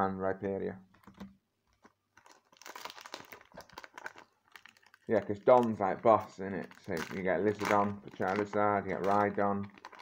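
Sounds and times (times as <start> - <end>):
foil wrapper crinkling: 0.9 - 10.0.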